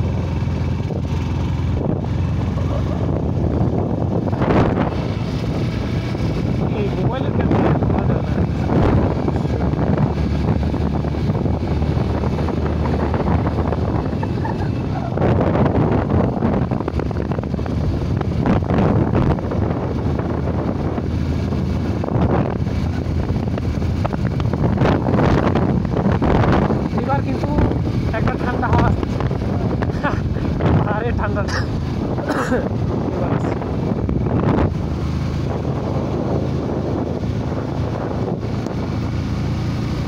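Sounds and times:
vehicle engine running: 0.0s - 40.0s
wind buffeting microphone: 0.0s - 40.0s.

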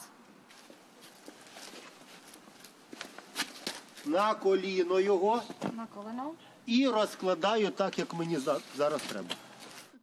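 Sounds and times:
faint outdoor background: 0.0s - 10.0s
footsteps: 0.4s - 4.3s.

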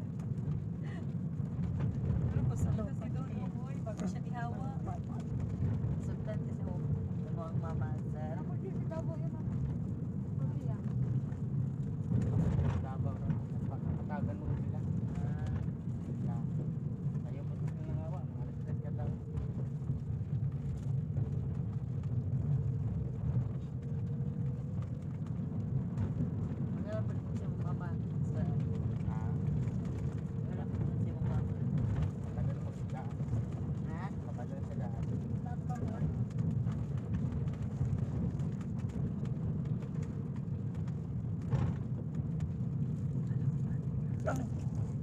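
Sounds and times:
vehicle engine and road noise: 0.0s - 45.0s.

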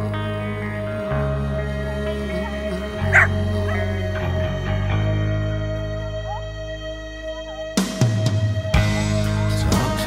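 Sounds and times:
slow guitar rock song: 0.0s - 10.0s
dog barking: 2.3s - 4.0s
dog yipping: 3.1s - 3.9s.

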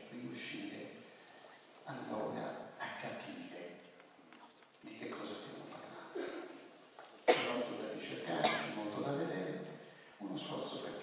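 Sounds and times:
man coughing: 6.1s - 6.6s, 7.2s - 7.7s, 8.4s - 8.8s
man's voice: 7.3s - 11.0s.

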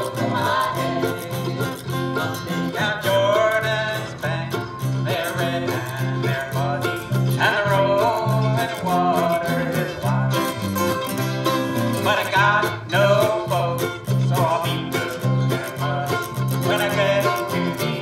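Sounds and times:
banjo: 0.0s - 18.0s
bluegrass band playing: 0.0s - 18.0s
fiddle: 0.0s - 18.0s
pulsing bass line: 0.0s - 18.0s.

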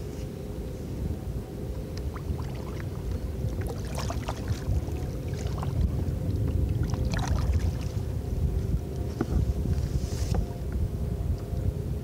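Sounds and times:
wind rumble on microphone: 0.0s - 12.0s
waves lapping against kayak: 2.0s - 10.4s.

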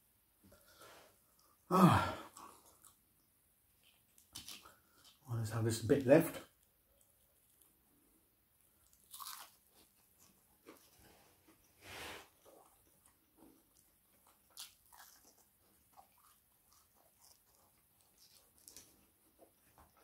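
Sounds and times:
chewing crispy fried fish: 3.8s - 5.3s, 8.6s - 10.9s, 12.3s - 20.0s.

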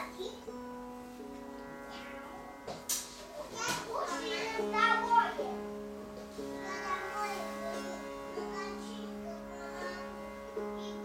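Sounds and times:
sitar playing: 0.0s - 11.0s.

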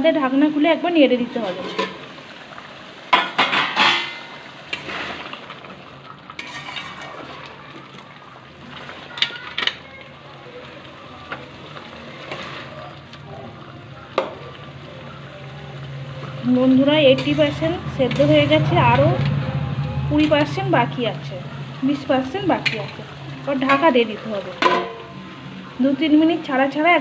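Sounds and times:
curry simmering sizzle: 0.0s - 27.0s
metal spatula scraping a pan: 3.3s - 5.3s, 6.4s - 7.4s, 17.0s - 25.2s.

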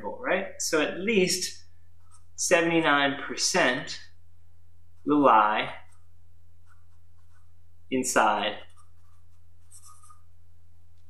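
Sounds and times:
steady low hum: 0.0s - 11.0s
marker writing on paper: 2.0s - 2.4s, 4.9s - 7.6s, 8.6s - 10.3s.

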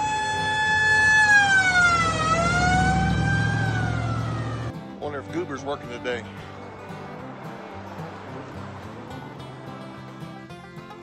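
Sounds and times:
police siren wailing: 0.0s - 4.7s
car engine rumbling: 0.0s - 10.9s.

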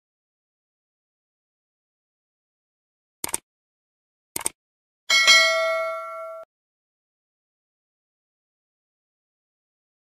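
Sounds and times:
bell ding: 5.1s - 6.5s.

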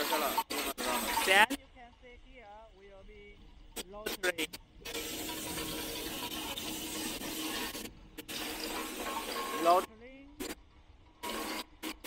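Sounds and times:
faint hum: 0.0s - 12.0s
machine hissing rush: 3.7s - 10.6s, 11.2s - 12.0s.

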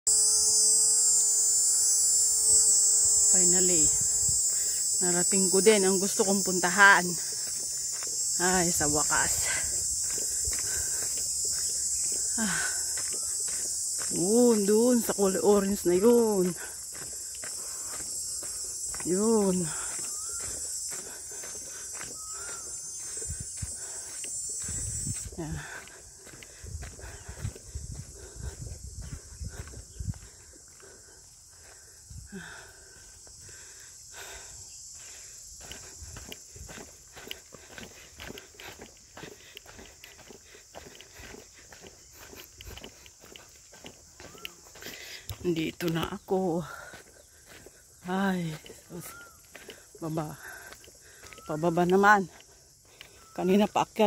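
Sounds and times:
cicadas buzzing: 0.1s - 54.0s.

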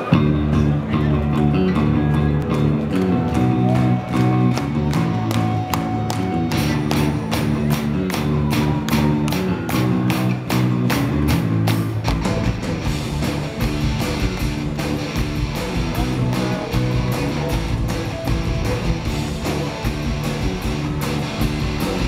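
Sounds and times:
bass guitar: 0.0s - 22.0s
electric guitar chords: 0.0s - 22.0s
drum beat: 5.2s - 22.0s.

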